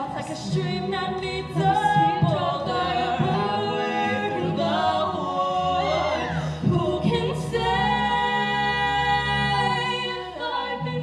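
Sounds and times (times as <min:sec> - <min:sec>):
two singers duet: 0:00.0 - 0:11.0.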